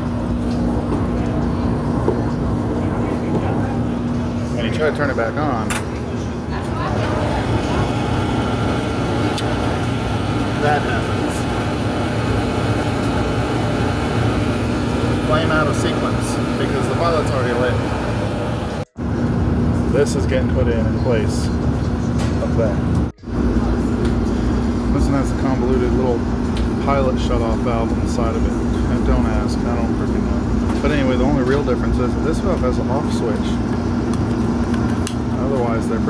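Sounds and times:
oven blower fan running: 0.0s - 36.0s.

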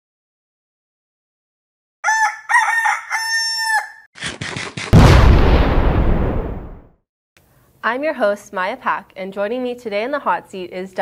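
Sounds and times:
rooster crowing: 2.0s - 4.1s
loud low boom: 5.0s - 6.9s.

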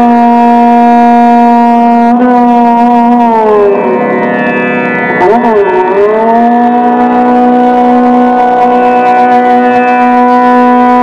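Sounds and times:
violin bowed note gliding: 0.0s - 11.0s.

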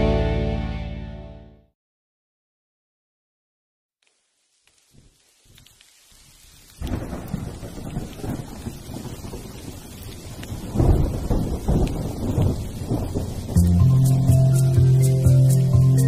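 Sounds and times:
rain hiss: 4.0s - 16.0s
thunder rumbling: 6.8s - 16.0s.

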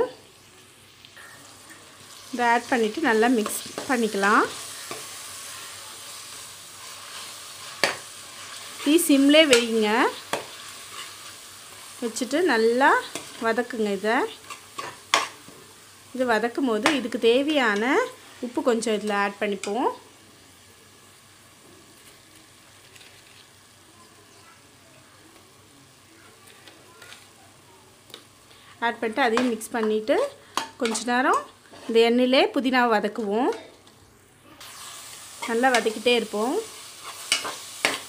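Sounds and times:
food sizzling in oil: 0.0s - 38.0s.

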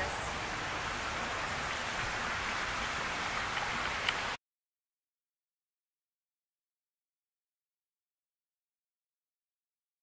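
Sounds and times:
outdoor background hiss: 0.0s - 4.4s.

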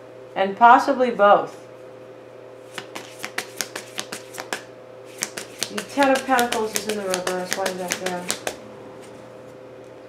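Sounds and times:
cards shuffled by hand: 2.7s - 8.6s.

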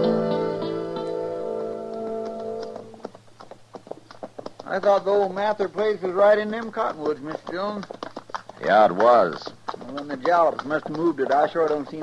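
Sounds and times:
held music chord: 0.0s - 2.9s
horse hooves clopping: 1.0s - 12.0s.

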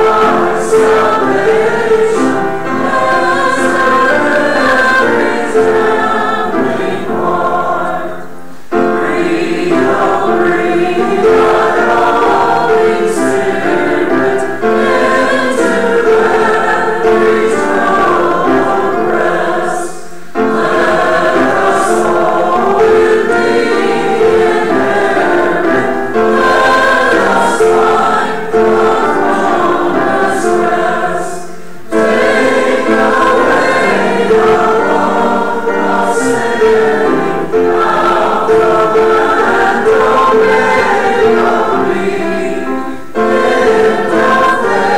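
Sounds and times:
choir and congregation singing hymn: 0.0s - 44.9s.

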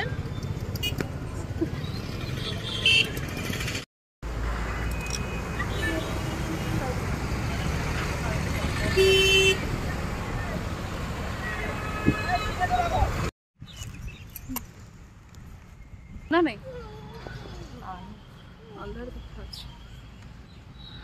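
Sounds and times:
traffic engine rumble: 0.0s - 21.0s
vehicle horn honking: 2.5s - 3.2s, 8.9s - 9.6s, 11.5s - 12.9s.

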